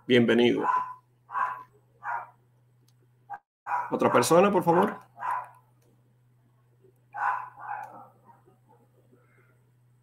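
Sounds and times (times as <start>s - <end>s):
dog barking: 0.6s - 2.4s, 3.3s - 4.4s, 5.2s - 5.6s, 7.1s - 9.0s.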